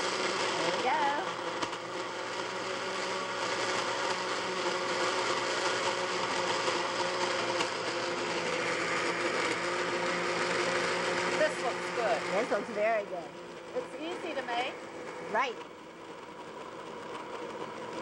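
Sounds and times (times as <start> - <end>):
blender motor whirring: 0.0 - 18.0.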